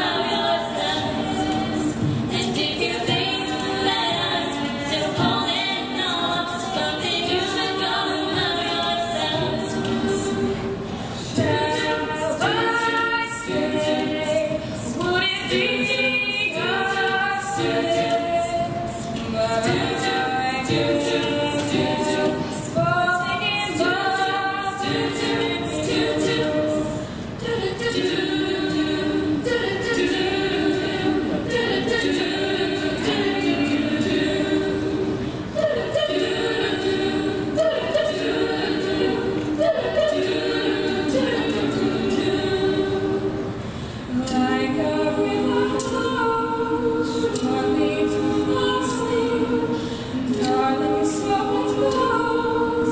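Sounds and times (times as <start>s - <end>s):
female group singing in harmony: 0.0s - 52.9s.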